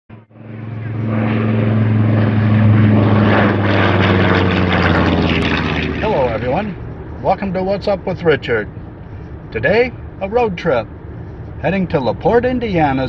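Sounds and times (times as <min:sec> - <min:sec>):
propeller aircraft engine drone: 0:00.1 - 0:13.0.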